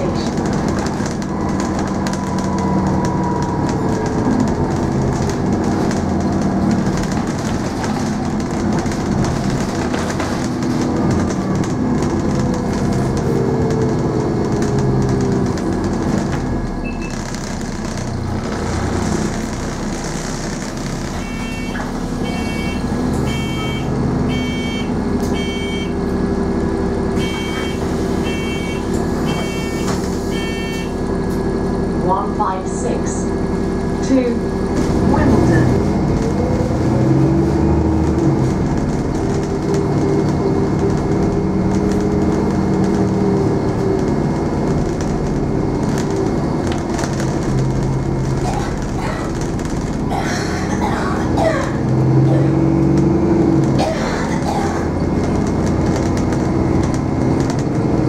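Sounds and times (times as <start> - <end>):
bus engine whine: 0.0 - 58.0
bus door warning beeps: 16.8 - 17.3, 21.2 - 26.0, 27.2 - 31.0.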